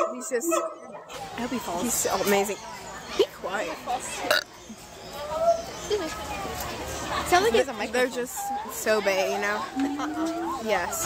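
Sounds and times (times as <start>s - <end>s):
faint background voices: 0.0s - 11.0s
throaty vocal noise: 4.2s - 4.6s.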